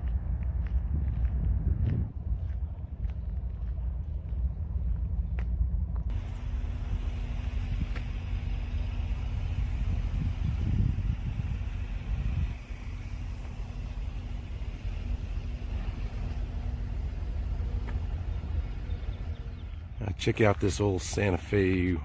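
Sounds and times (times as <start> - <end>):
vehicle rumble: 0.0 - 22.0
faint steady hum: 3.0 - 20.1.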